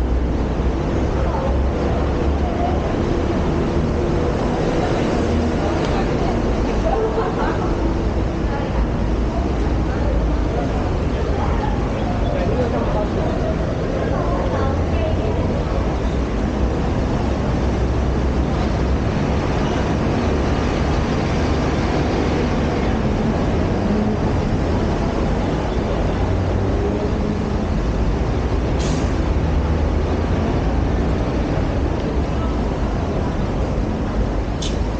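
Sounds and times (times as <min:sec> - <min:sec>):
road traffic rumble: 0:00.0 - 0:34.9.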